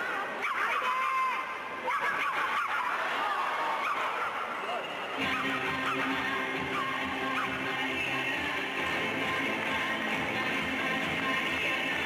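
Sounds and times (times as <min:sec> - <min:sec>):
arena crowd cheering and shouting: 0:00.0 - 0:12.0.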